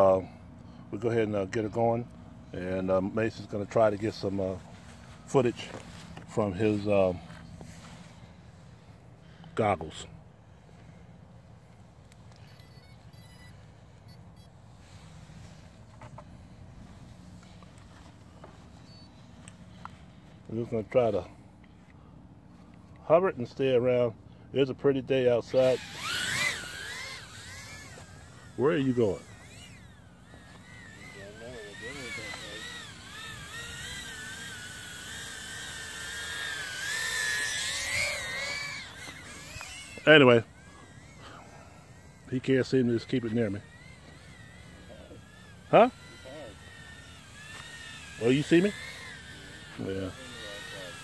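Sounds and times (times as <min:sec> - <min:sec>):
drone propellers whining: 0:02.2 - 0:20.5, 0:25.4 - 0:51.0
small electronic beeps: 0:12.3 - 0:14.6, 0:18.8 - 0:19.3.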